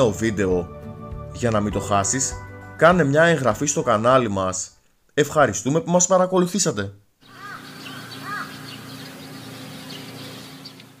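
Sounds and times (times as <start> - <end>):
short arched bird calls: 7.2 - 11.0.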